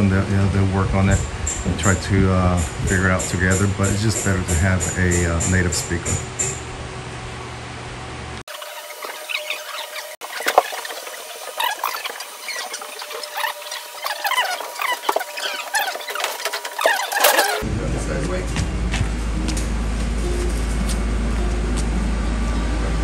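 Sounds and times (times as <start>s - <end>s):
steady low hum: 0.0s - 8.4s, 10.0s - 23.0s
high-pitched sped-up squeaks and chirps: 8.5s - 17.6s.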